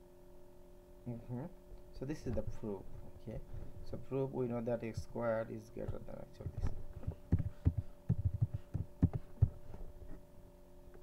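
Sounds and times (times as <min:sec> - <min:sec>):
faint steady hum: 0:00.0 - 0:11.0
computer keyboard typing: 0:06.4 - 0:09.2.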